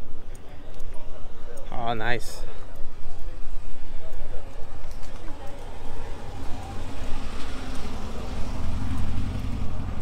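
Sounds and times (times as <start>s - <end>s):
car engine rumble passing: 5.2s - 10.0s.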